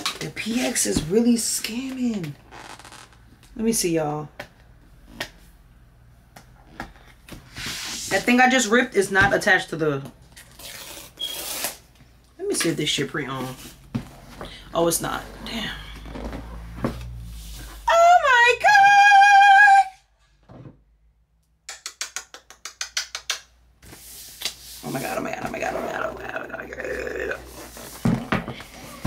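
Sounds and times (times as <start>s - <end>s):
paper packaging tearing: 10.4s - 11.9s.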